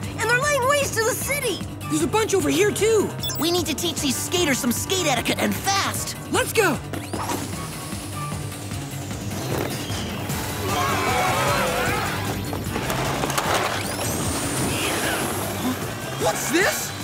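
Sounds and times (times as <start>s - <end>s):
action background music: 0.0s - 17.0s.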